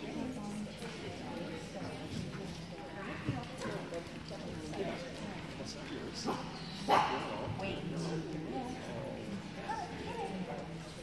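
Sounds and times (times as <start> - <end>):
low murmured talk: 0.0 - 11.0.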